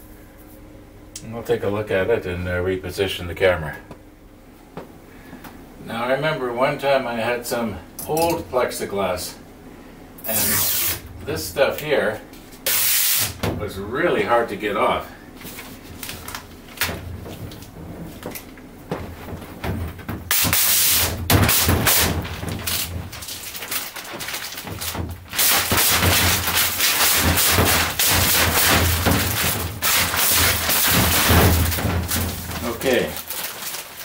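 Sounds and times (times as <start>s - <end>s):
loose plastic film crinkling: 15.4s - 34.0s
plastic film peeling off sheet: 20.3s - 34.0s.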